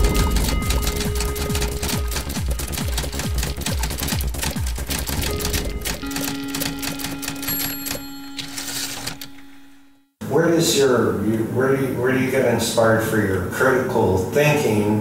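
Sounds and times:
held low note: 0.0s - 4.1s
pulsing bass: 0.0s - 6.1s.

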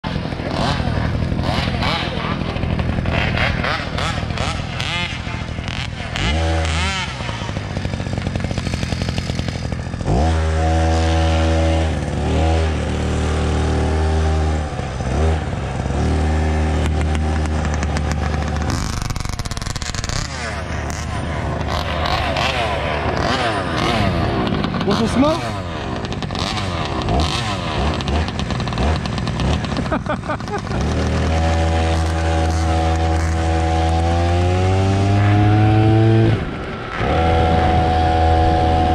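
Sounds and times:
small gasoline engine revving: 0.0s - 38.9s.

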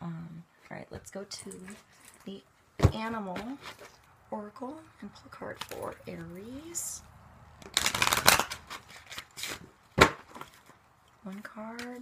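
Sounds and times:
cards snapping: 7.6s - 10.6s
cards shuffling: 7.6s - 10.8s.

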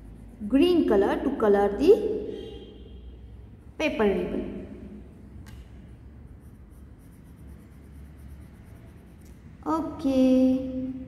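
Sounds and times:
crayon rubbing on paper: 6.2s - 9.3s.

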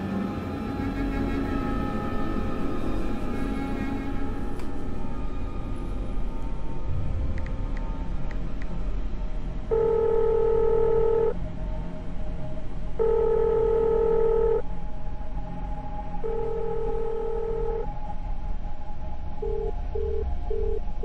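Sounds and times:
low background hum: 0.0s - 21.0s
telephone ringback tone: 9.7s - 11.4s, 13.0s - 14.6s, 16.2s - 17.9s.

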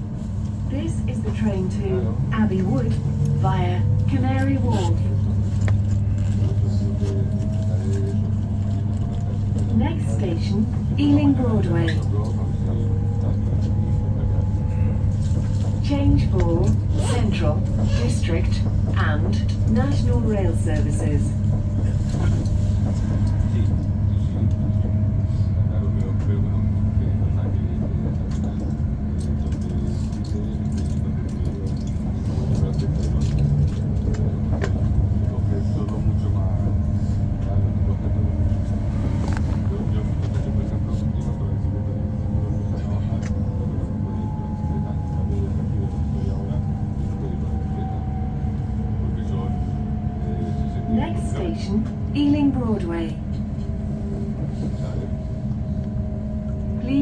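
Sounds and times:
train wheels rumbling on track: 0.0s - 57.0s.

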